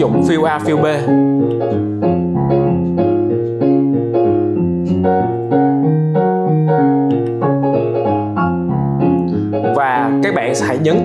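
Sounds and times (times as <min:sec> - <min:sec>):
digital piano accompaniment: 0:00.0 - 0:11.0.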